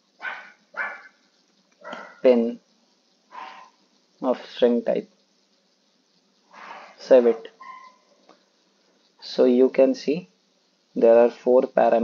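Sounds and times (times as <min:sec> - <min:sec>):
short animal calls: 0:03.3 - 0:03.8, 0:06.5 - 0:08.1.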